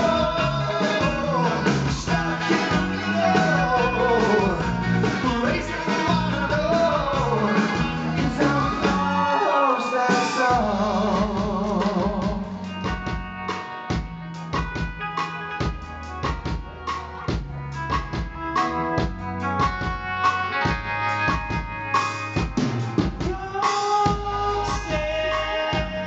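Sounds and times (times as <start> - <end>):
drum kit beating: 0.0 - 9.4, 10.1 - 26.0
guitar and keyboard chords: 0.0 - 26.0.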